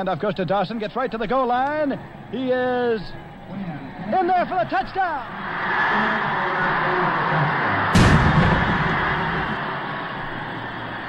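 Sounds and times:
stadium crowd roar: 1.9s - 11.0s
cannon firing with low boom: 8.0s - 9.6s.

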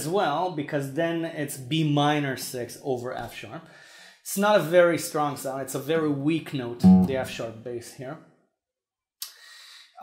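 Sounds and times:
man speaking: 0.0s - 3.6s, 4.2s - 8.2s.

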